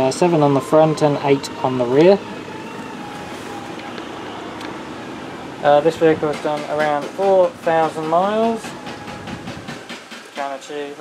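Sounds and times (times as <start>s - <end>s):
steady hum and hiss: 0.0s - 11.0s.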